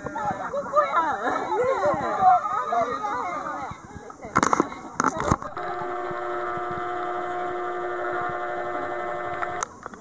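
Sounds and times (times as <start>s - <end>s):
zoom lens motor whine: 5.4s - 9.7s.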